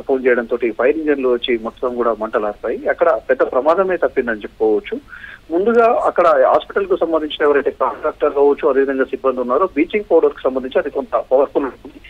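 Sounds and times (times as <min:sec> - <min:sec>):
man talking over telephone line: 0:00.0 - 0:12.0.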